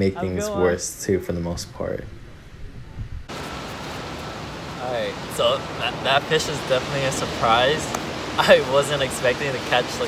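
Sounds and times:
wind hissing: 0:01.7 - 0:10.0
gentle surf: 0:03.3 - 0:10.0.

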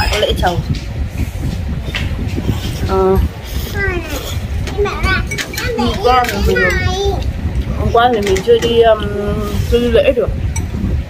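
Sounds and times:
children chattering: 0:02.6 - 0:09.3.

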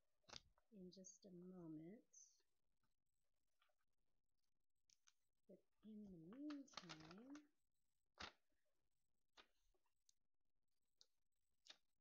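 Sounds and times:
vinyl sheet crinkling: 0:05.8 - 0:07.5, 0:08.1 - 0:08.4
paper ticks: 0:06.3 - 0:07.4.

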